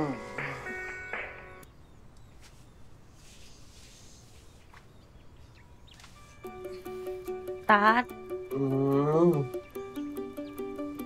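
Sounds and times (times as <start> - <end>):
light music with ticking beat: 0.0 - 1.7, 6.4 - 11.0.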